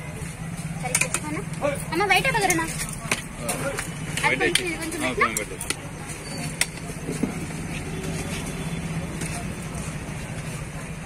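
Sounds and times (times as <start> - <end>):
faint voices: 0.0 - 11.0
road traffic hum: 0.0 - 11.0
metal spoon clinking on pots: 0.8 - 1.5, 2.2 - 6.9.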